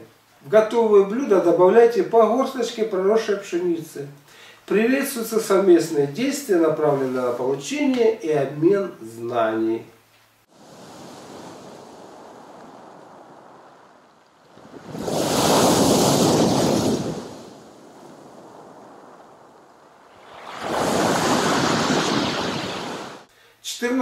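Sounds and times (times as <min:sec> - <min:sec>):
waves breaking on pebbles: 0:10.5 - 0:23.3
water washing: 0:11.4 - 0:23.3.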